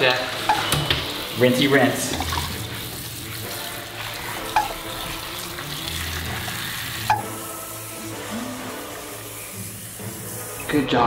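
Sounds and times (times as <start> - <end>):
shower spray hissing: 0.0 - 11.0.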